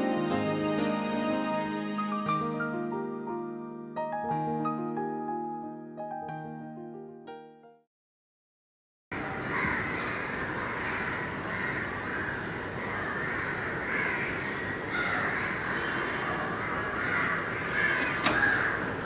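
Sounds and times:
crows cawing: 9.2 - 19.0
outdoor ambient hum: 9.2 - 19.0.

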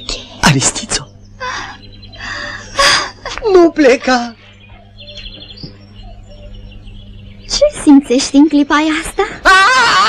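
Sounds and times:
small birds chirping: 0.0 - 9.4
low steady hum: 0.0 - 10.0.

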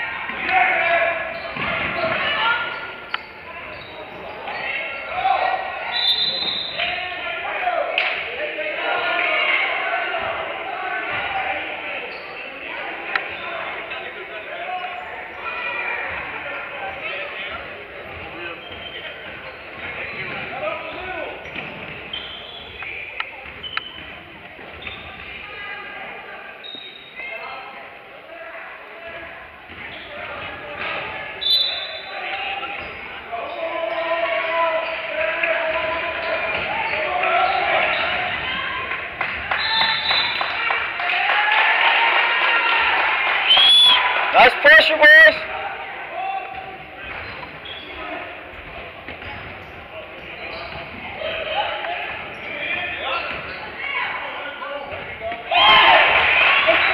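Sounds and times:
voices in echoing gym: 0.0 - 56.9.

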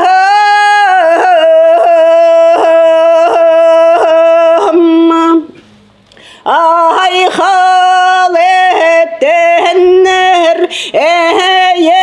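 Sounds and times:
woman singing a steady note: 0.0 - 5.6, 6.4 - 12.0.

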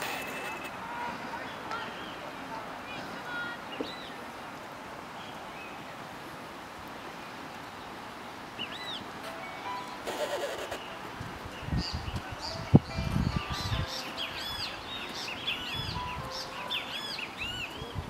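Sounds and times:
birds chirping: 0.0 - 4.4, 6.9 - 18.0
outdoor background noise: 0.0 - 18.0.

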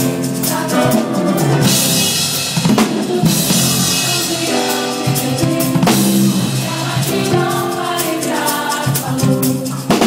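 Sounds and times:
band backing music: 0.0 - 10.0
drum kits playing: 0.0 - 10.0.

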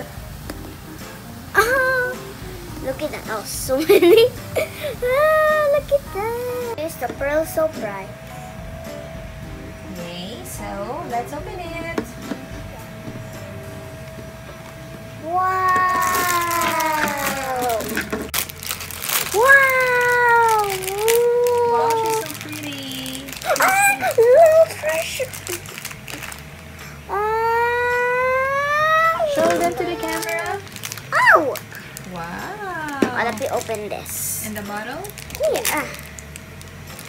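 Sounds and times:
steady held tone: 5.0 - 17.9
girls squealing: 19.3 - 22.2, 27.1 - 31.6
girls saying ooh: 19.3 - 22.4, 27.1 - 31.6.

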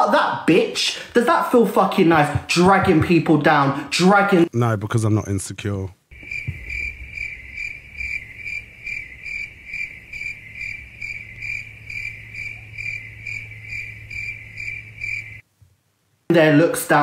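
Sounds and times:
crickets chirping: 6.1 - 15.5.

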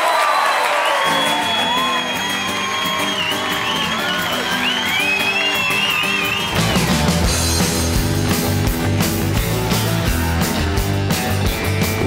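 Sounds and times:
audience whoops and cheers: 0.0 - 7.4
bass and drums: 3.5 - 12.0
guitar chords strummed: 5.8 - 12.0.

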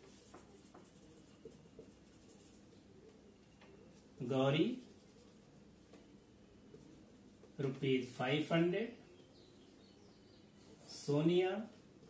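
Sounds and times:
marker writing on whiteboard: 0.0 - 7.7.

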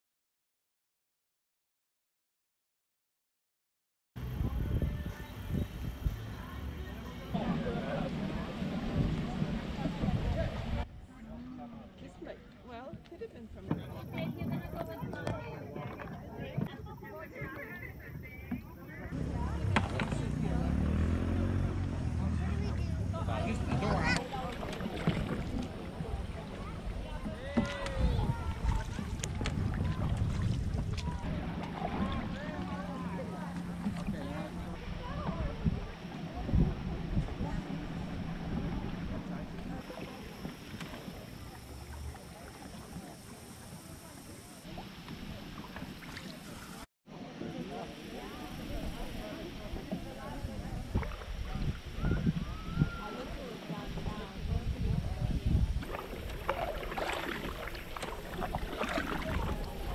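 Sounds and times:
wind rumble on microphone: 4.2 - 11.3, 12.8 - 46.1, 48.2 - 59.9
paddle strokes in water: 4.2 - 59.9
water against canoe hull: 4.2 - 59.9
people talking indistinctly: 4.3 - 59.9.

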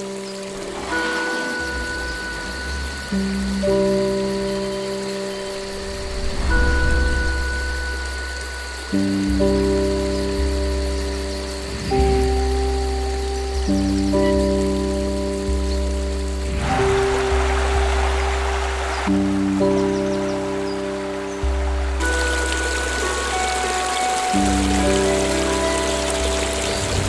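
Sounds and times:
slow sustained chords over bass: 0.0 - 27.0.

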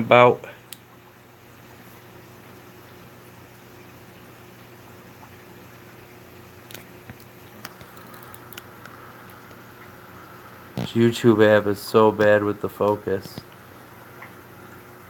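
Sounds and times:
aquarium equipment hum and hiss: 0.0 - 15.0.

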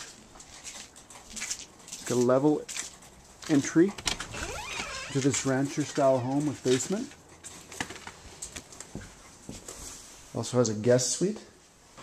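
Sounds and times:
faint room noise: 0.0 - 12.0
quiet footsteps: 0.0 - 12.0.

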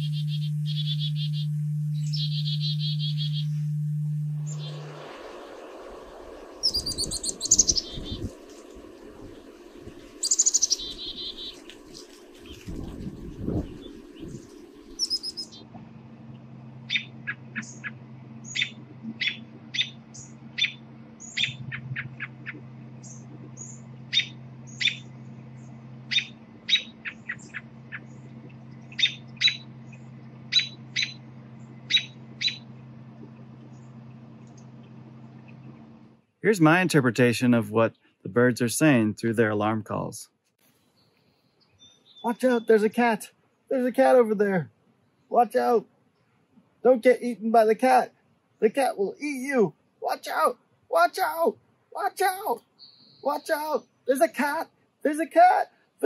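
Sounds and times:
robin sharp alarm notes: 0.0 - 12.6, 13.2 - 15.7, 16.8 - 25.2, 28.8 - 32.7
chickadee alarm call: 0.0 - 15.7, 16.8 - 32.8, 41.8 - 43.0, 50.0 - 54.2
steady low hum: 0.0 - 55.3.

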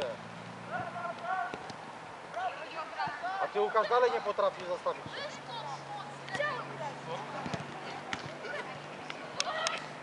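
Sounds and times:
distant players calling: 0.0 - 10.0
footballs being kicked: 7.3 - 9.6.

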